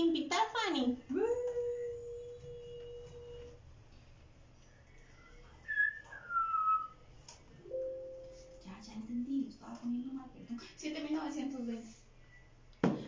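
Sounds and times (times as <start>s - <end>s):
woman humming: 1.1s - 3.6s.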